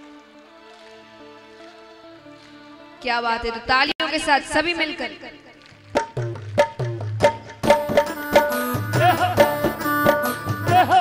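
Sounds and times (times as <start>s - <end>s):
hand drum beat: 5.8s - 11.0s
devotional melody bending in pitch: 7.7s - 11.0s.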